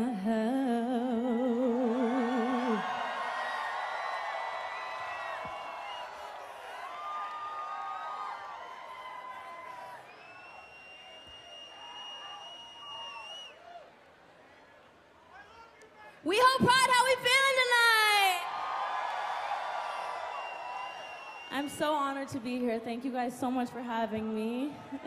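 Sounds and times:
woman singing with vibrato: 0.0 - 3.0
crowd cheering and screaming: 1.0 - 13.9, 18.0 - 22.6.

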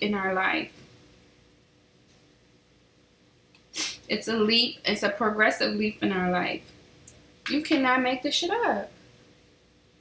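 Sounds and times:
woman sniffing or sneezing: 3.7 - 4.1.

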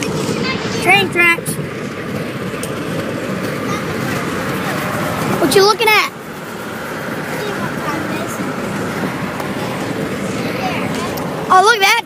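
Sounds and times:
road and tyre noise in car: 0.0 - 12.0.

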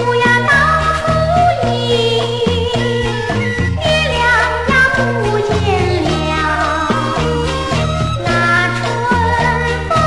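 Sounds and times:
band accompaniment: 0.0 - 10.0
woman singing with vibrato: 0.0 - 10.0.

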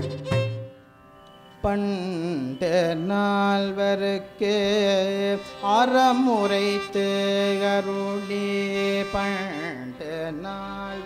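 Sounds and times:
man singing devotional song: 1.6 - 11.0.

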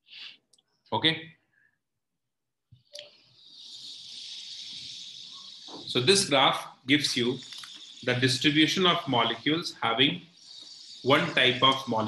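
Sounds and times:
high-pitched hiss: 3.0 - 12.0
man speaking: 5.9 - 7.4, 8.0 - 10.3, 11.1 - 12.0.

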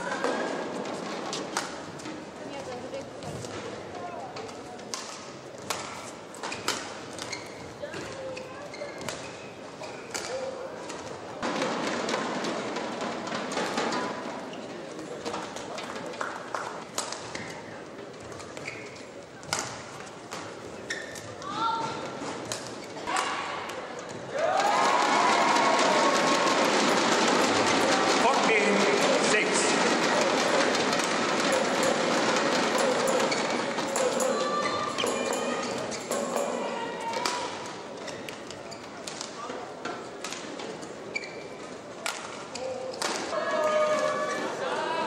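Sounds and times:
racket hitting shuttlecock: 19.4 - 20.5
crowd cheering and shouting: 24.3 - 37.8, 43.3 - 45.0.

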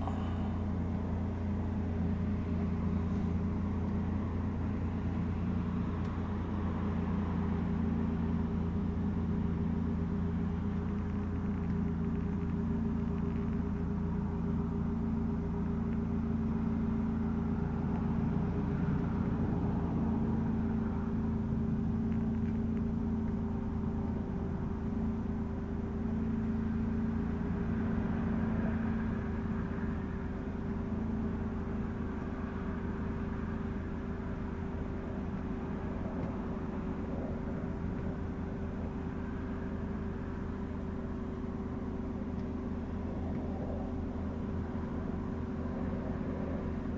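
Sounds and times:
low mechanical hum: 0.0 - 46.9.

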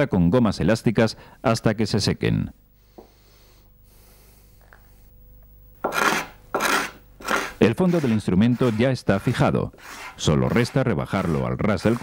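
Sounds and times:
hand tool scraping wood: 5.8 - 12.0.

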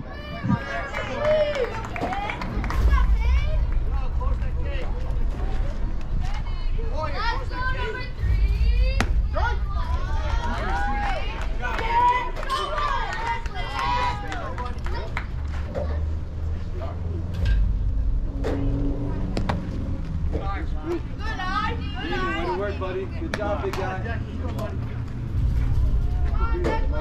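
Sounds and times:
people calling out and chattering: 0.0 - 27.0
steady low rumble: 0.0 - 27.0.

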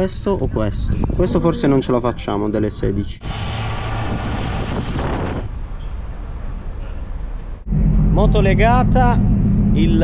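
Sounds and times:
wind rushing over microphone: 0.0 - 10.0
low motorcycle engine hum: 5.6 - 10.0.

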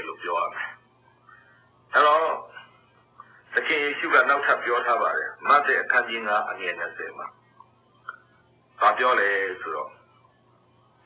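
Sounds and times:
man preaching: 0.0 - 0.8, 1.9 - 2.7, 3.5 - 7.4, 8.8 - 10.0.

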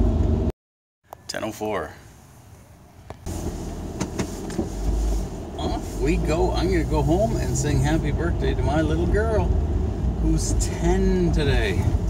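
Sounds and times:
car cabin driving rumble: 3.2 - 12.0.

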